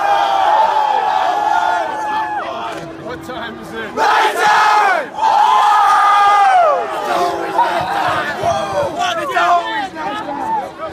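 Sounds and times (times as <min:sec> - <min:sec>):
team yelling a victory cheer: 0:04.0 - 0:09.9.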